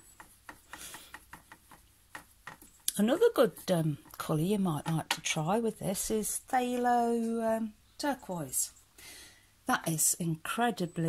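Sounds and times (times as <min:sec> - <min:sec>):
paintbrush tapping plastic palette: 0:00.0 - 0:05.6.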